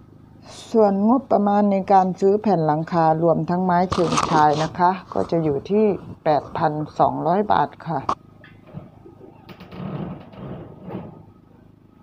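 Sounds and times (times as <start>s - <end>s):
rattling clatter on metal roof: 8.7s - 11.3s.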